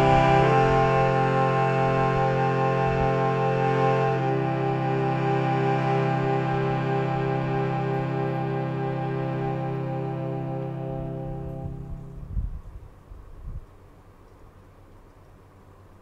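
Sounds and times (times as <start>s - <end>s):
harmonium sustained chord: 0.0s - 12.4s.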